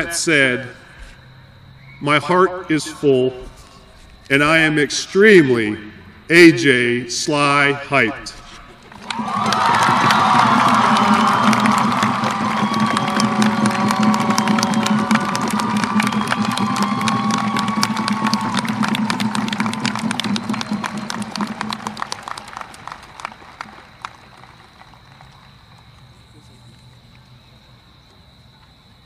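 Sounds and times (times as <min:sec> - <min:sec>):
crowd cheering and clapping: 0:08.8 - 0:26.1
scattered shouts: 0:09.0 - 0:20.0.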